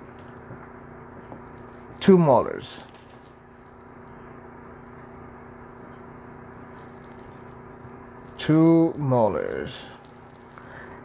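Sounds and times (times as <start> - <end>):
low hum of level tones: 0.0 - 11.0.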